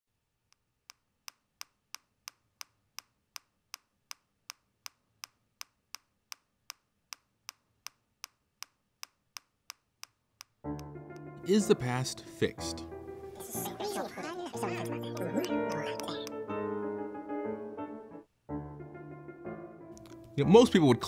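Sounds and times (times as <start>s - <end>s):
sharp ticking clicks: 0.5s - 11.3s.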